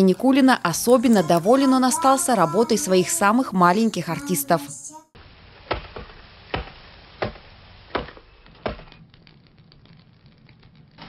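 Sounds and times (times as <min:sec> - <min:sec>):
hatchet chopping twigs on wood: 0:05.6 - 0:09.0.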